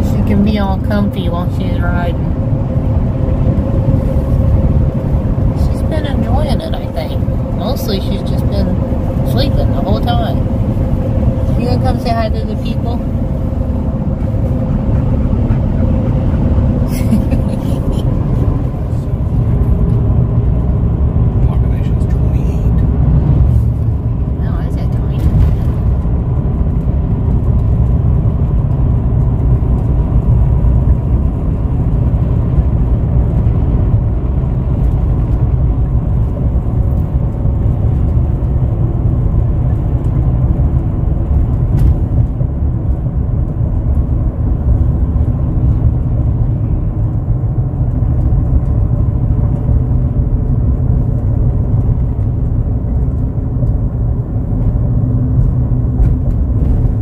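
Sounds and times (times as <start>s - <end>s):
road and engine rumble in cab: 0.0s - 57.0s.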